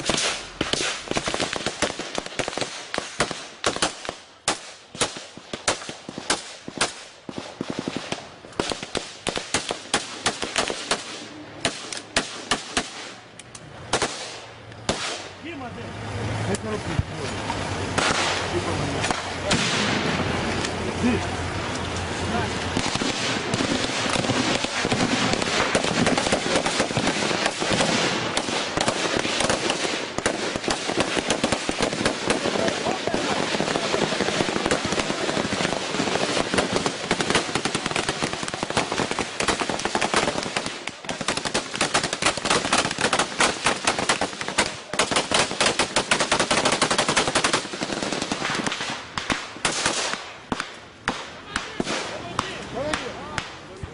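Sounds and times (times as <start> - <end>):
automatic gunfire: 22.8 - 53.0.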